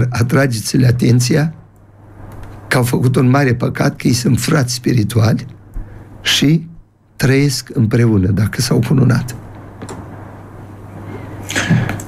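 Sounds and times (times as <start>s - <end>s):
man speaking: 0.0s - 1.6s, 2.7s - 5.6s, 6.2s - 9.4s
steady low hum: 0.0s - 12.0s
breathy hiss: 5.7s - 6.3s, 10.9s - 12.0s.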